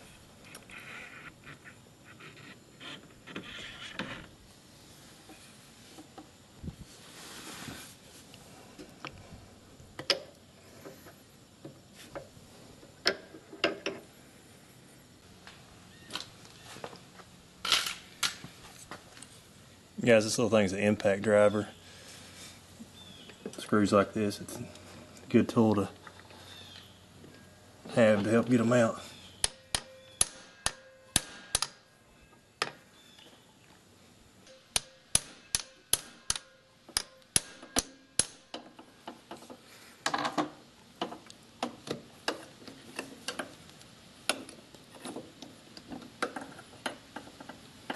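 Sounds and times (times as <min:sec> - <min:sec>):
hammer striking metal: 0:29.4 - 0:31.8, 0:34.5 - 0:38.4.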